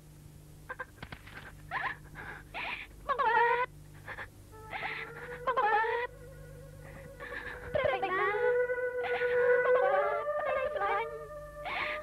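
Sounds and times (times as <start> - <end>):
low hum: 0.0 - 12.0
high bending vocal sound: 4.6 - 12.0.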